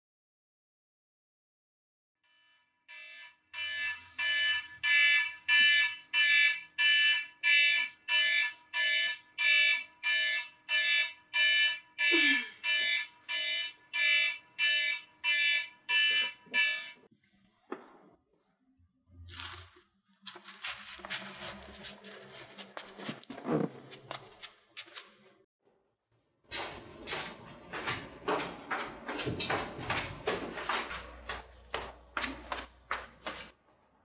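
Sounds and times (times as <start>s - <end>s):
alarm clock beeping: 2.3s - 17.1s.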